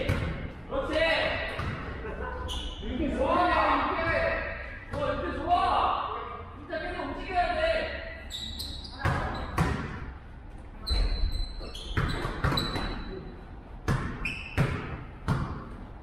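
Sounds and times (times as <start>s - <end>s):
basketball bouncing on gym floor: 0.0s - 0.6s, 1.4s - 2.0s, 8.8s - 10.2s, 10.9s - 13.1s, 13.8s - 15.8s
players' voices echoing: 0.0s - 8.3s
sneaker squeaks: 2.4s - 3.0s, 8.1s - 9.9s, 10.8s - 15.1s.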